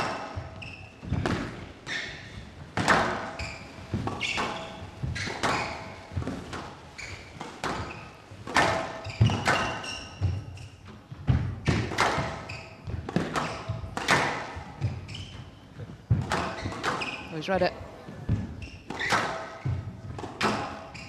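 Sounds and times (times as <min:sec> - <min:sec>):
squash ball hits: 0:00.0 - 0:01.7, 0:02.7 - 0:15.4, 0:16.0 - 0:17.2, 0:18.1 - 0:21.0
shoes squeaking on court floor: 0:00.0 - 0:21.0.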